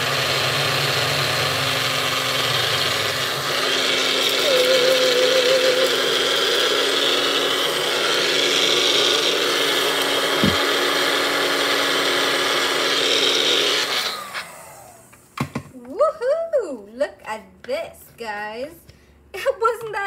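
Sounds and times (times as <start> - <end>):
blender motor grinding: 0.0 - 15.2.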